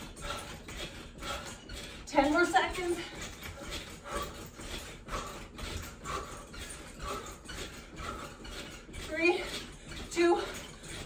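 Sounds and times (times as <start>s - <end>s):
trampoline springs creaking: 0.0s - 11.0s.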